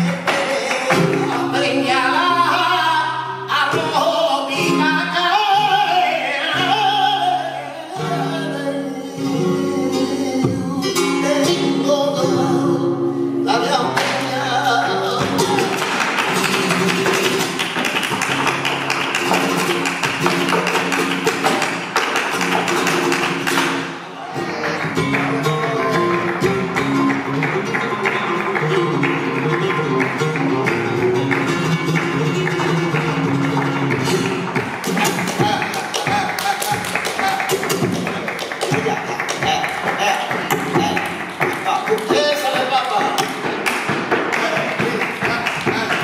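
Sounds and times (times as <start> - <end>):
hand-clapping: 0.0 - 1.8, 13.9 - 14.3, 15.2 - 46.0
man singing: 0.0 - 17.5, 24.1 - 30.0, 32.2 - 46.0
flamenco guitar: 0.0 - 46.0
percussive dance footwork: 15.2 - 23.9, 26.2 - 46.0.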